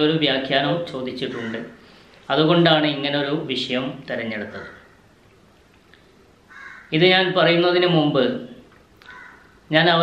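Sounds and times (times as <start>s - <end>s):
man speaking: 0.0s - 4.8s, 7.0s - 8.6s, 9.7s - 10.0s
crow cawing: 1.3s - 1.8s, 4.4s - 5.1s, 6.5s - 7.0s, 9.0s - 9.6s.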